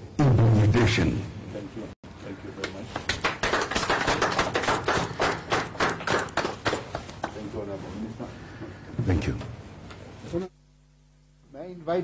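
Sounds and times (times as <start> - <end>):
people clapping: 2.6 - 7.5.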